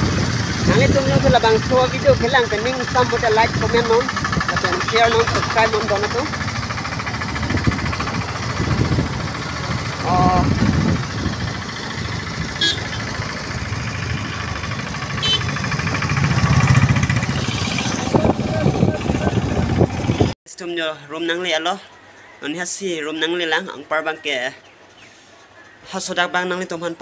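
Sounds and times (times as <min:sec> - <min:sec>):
motorcycle engine rumble: 0:00.0 - 0:20.4
road noise: 0:00.0 - 0:20.4
man talking: 0:00.7 - 0:06.4, 0:09.9 - 0:10.6, 0:18.1 - 0:19.7.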